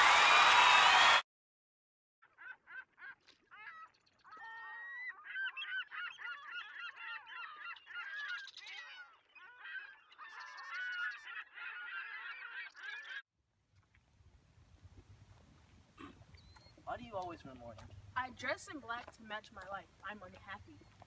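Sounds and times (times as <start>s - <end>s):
gulls calling: 2.4s - 13.2s.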